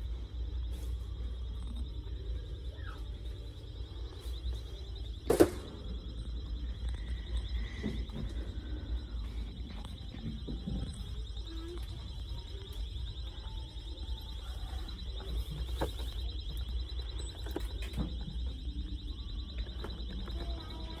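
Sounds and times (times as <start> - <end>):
warbling electronic alarm: 0.0 - 21.0.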